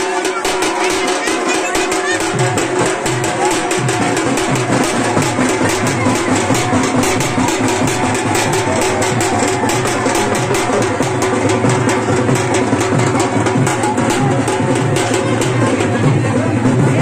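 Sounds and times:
loud music with fast drumbeat: 0:00.0 - 0:17.0.

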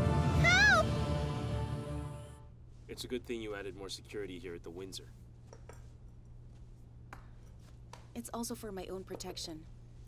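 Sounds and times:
dramatic music: 0:00.0 - 0:02.5.

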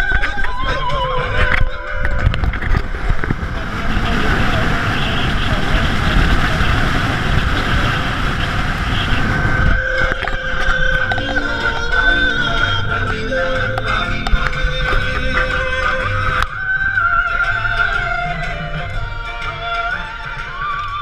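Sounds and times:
music: 0:00.0 - 0:05.9, 0:09.4 - 0:21.0
wind and road noise: 0:00.0 - 0:21.0
voices inside car: 0:02.6 - 0:16.5.

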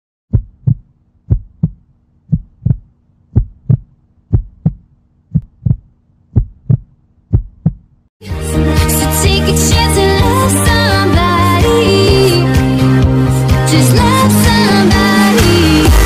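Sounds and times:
heartbeat thumps: 0:00.3 - 0:08.0.

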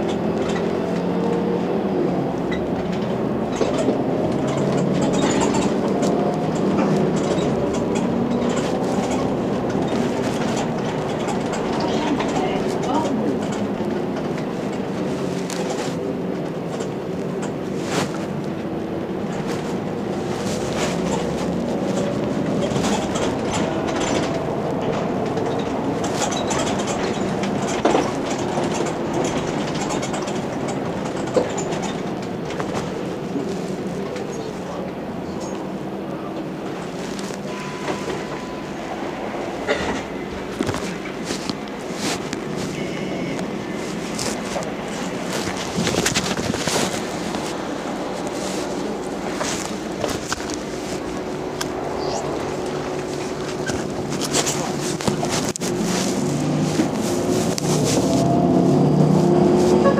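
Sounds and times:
body clicks and rattles: 0:00.0 - 0:38.3, 0:39.6 - 0:59.9
bus engine running: 0:00.0 - 0:59.9
road and cabin noise: 0:00.0 - 0:59.9.

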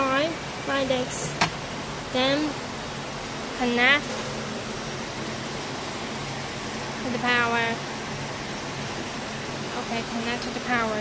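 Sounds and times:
machinery fan hum and hiss: 0:00.0 - 0:11.0.

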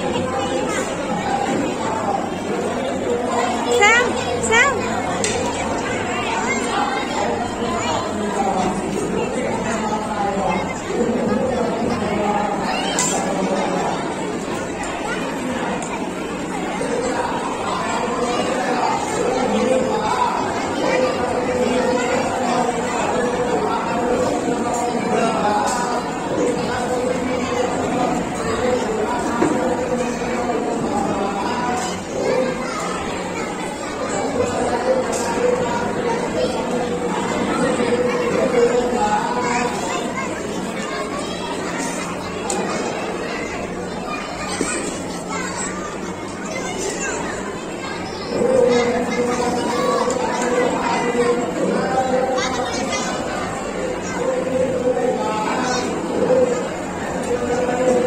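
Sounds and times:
children and adults chattering: 0:00.0 - 0:58.0
crowd babble: 0:00.0 - 0:58.0.

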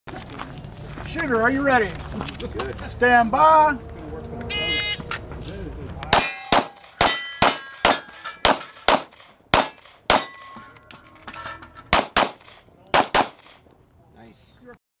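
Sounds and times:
pistol shots: 0:06.1 - 0:10.4, 0:11.9 - 0:13.6
steel plates ringing: 0:06.2 - 0:09.0, 0:09.6 - 0:12.5.

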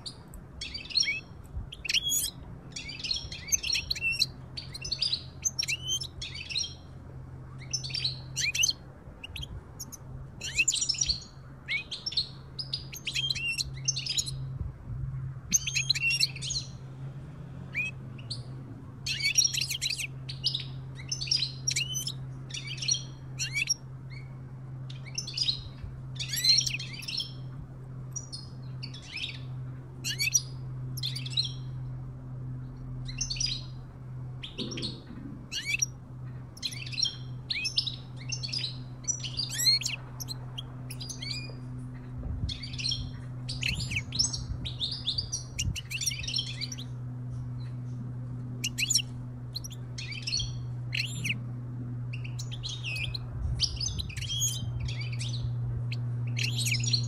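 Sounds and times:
goldfinches twittering: 0:00.0 - 0:14.6, 0:15.4 - 0:16.9, 0:17.6 - 0:57.0
low hum: 0:00.0 - 0:57.0.

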